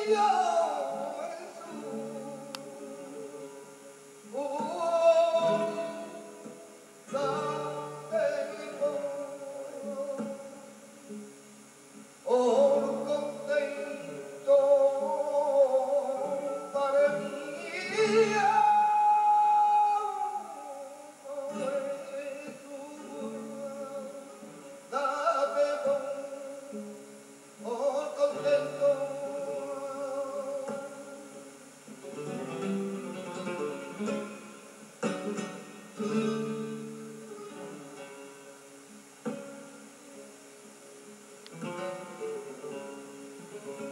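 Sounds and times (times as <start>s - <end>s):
man singing flamenco: 0.0s - 11.4s, 12.2s - 38.6s, 41.5s - 43.9s
flamenco guitar: 0.0s - 43.9s.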